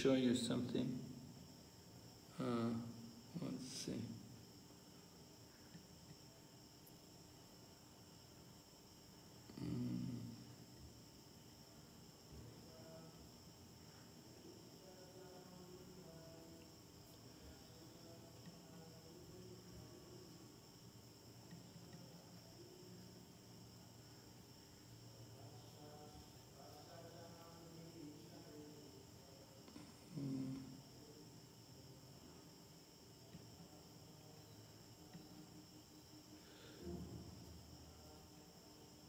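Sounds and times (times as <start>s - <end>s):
faint high whine: 0.0s - 39.0s.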